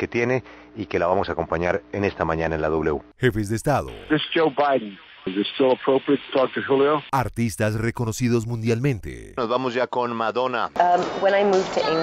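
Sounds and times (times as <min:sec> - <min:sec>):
person speaking: 0:03.2 - 0:04.1, 0:07.1 - 0:09.4.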